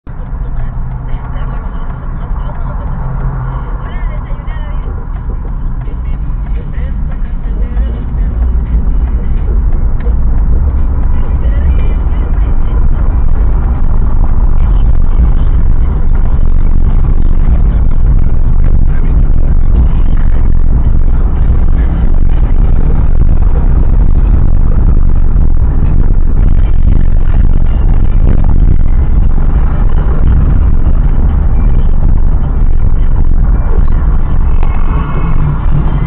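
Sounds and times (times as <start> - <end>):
car engine and road noise: 0.0 - 36.0.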